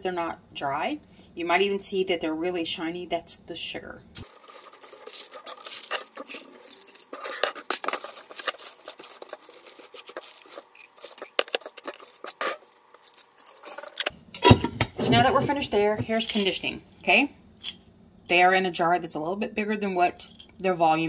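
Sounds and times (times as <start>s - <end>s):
sheet scraping and rustling: 4.2s - 14.1s
small pieces clicking against glass: 4.2s - 14.1s.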